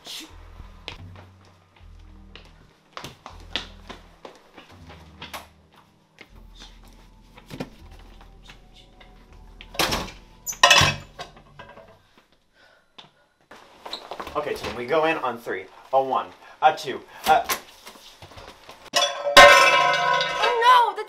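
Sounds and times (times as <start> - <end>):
low bass line: 0.3 - 2.7, 6.3 - 11.5.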